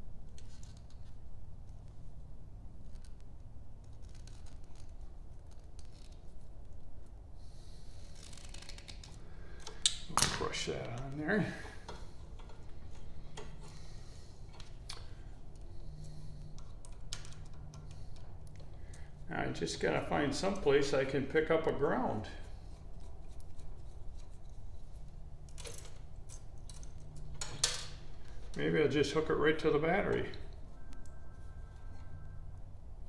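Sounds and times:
steady low hum: 0.0s - 33.0s
wires being handled: 0.1s - 33.0s.

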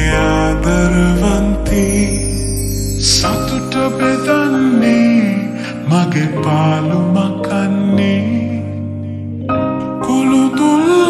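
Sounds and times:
slowed pop song with reverb: 0.0s - 11.0s.

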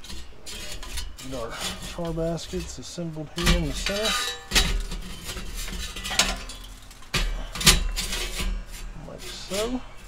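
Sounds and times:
metal baskets clanking on grill grate: 0.0s - 10.0s.

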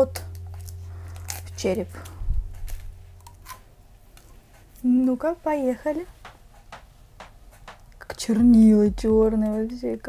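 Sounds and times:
soft low thump: 2.2s - 3.1s.

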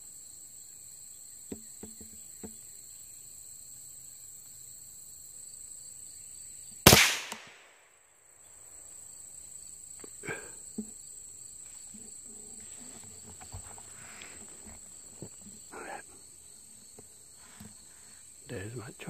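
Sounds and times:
insects droning: 0.0s - 19.0s
rifle shot: 6.9s - 7.9s
rustling: 10.8s - 15.7s.

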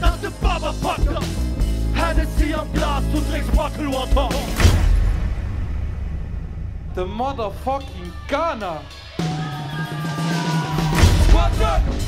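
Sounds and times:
low bass rumble: 0.0s - 9.1s.

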